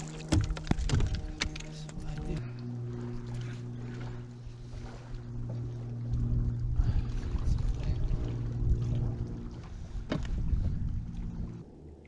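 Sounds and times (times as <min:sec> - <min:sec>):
electric trolling motor humming: 0:00.0 - 0:12.0
wind buffeting microphone: 0:00.3 - 0:11.6.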